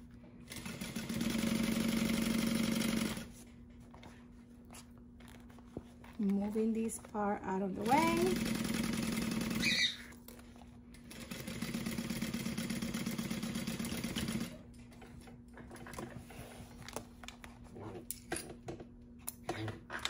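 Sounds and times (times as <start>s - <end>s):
sewing machine stitching: 0.5s - 3.3s, 7.8s - 9.9s, 11.1s - 14.6s
handling sounds: 3.4s - 8.2s.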